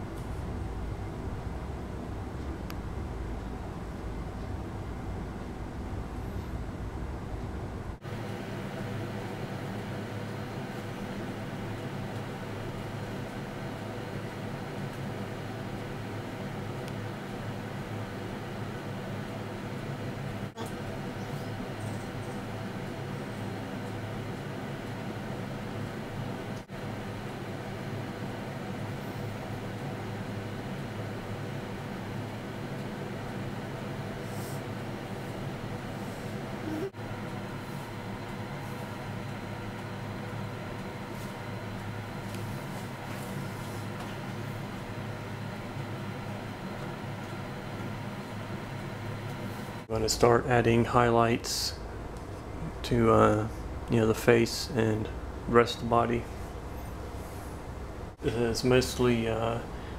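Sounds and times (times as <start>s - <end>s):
mechanical hum: 0.0s - 59.9s.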